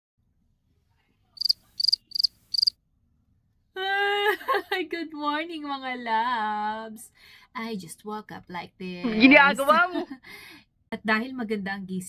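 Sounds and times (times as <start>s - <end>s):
cricket chirping: 1.4s - 2.7s
woman speaking: 3.8s - 10.2s, 11.0s - 12.0s.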